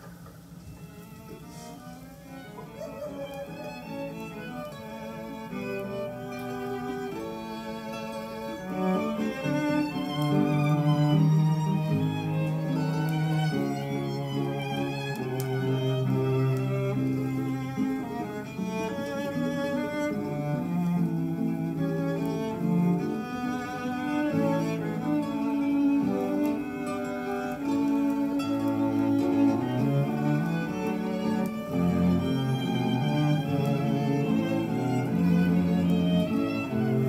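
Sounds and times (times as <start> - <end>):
cello and violin music: 0.5 - 37.0.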